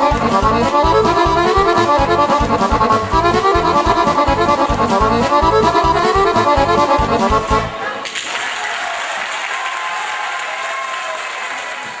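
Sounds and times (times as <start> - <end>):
accordion and guitar music: 0.0 - 7.8
audience applauding: 7.9 - 12.0.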